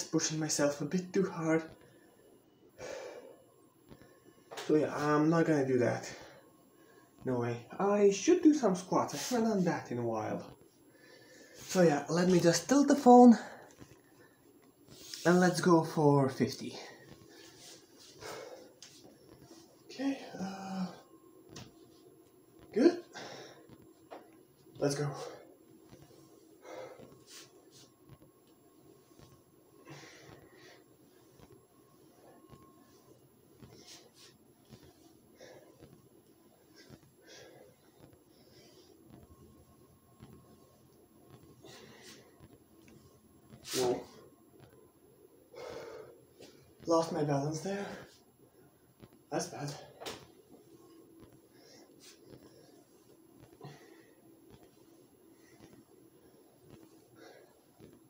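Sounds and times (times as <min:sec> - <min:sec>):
person breathing: 0:01.8 - 0:04.4, 0:10.9 - 0:11.7, 0:16.7 - 0:21.0, 0:23.1 - 0:24.2, 0:25.2 - 0:27.9, 0:29.2 - 0:39.2, 0:41.3 - 0:42.5, 0:45.5 - 0:46.8, 0:49.7 - 0:57.9
soft rustles: 0:08.2 - 0:20.0, 0:23.3 - 0:58.0.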